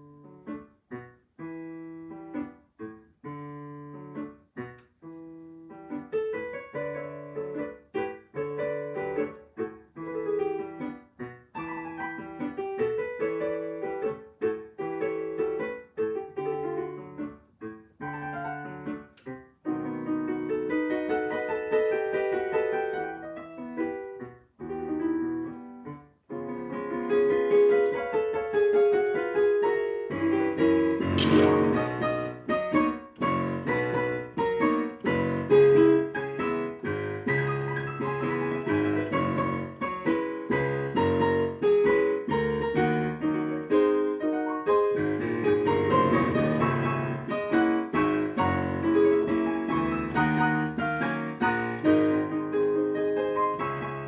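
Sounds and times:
digital piano solo piece: 0.0 - 54.0.

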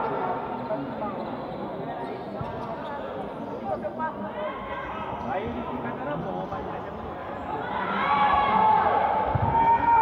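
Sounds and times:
chatter of spectators: 0.0 - 10.0.

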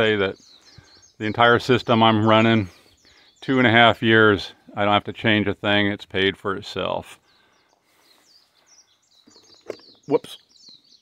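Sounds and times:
small birds chirping: 0.0 - 11.0.

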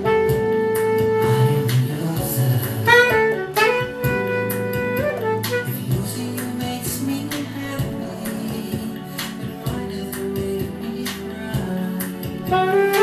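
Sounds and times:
saxophone playing melody: 0.0 - 1.8, 2.8 - 6.2, 12.4 - 13.0
drums and band accompaniment: 0.0 - 13.0.

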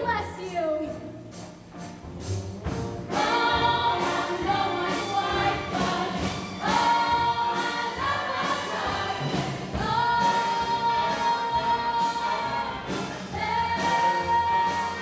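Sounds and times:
pit orchestra playing: 0.4 - 15.0
ensemble singing in chorus: 3.1 - 15.0.

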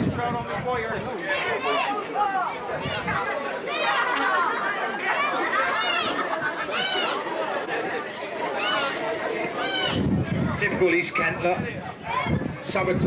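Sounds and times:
many voices chattering: 0.0 - 13.0.

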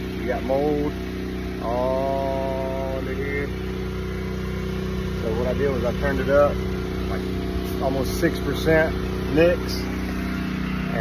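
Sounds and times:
engine idling with ticking: 0.0 - 11.0.

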